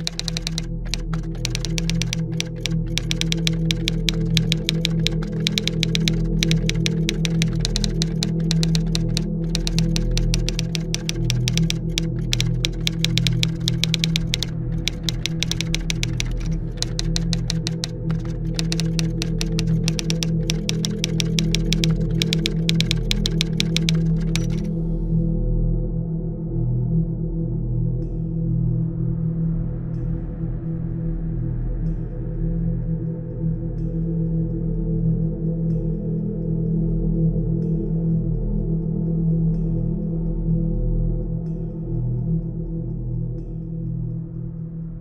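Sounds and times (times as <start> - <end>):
typing key clicks: 0.0 - 24.7.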